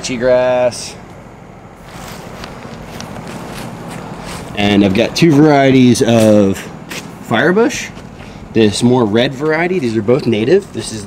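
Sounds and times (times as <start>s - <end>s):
soft footsteps: 1.8s - 7.2s, 7.8s - 11.0s.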